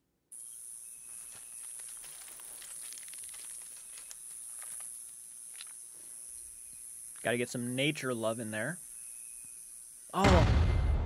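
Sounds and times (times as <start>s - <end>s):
faint ticks and crackles: 0.4s - 10.0s
high-pitched insect drone: 0.4s - 10.2s.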